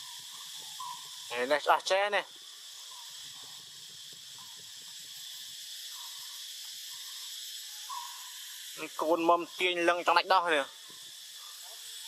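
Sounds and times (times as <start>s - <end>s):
forest insects droning: 0.0s - 12.0s.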